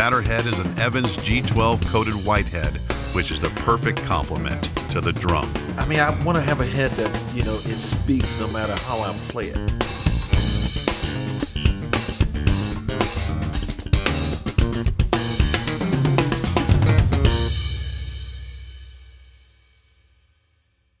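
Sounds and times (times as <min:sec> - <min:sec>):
drum kit solo: 0:00.0 - 0:19.7.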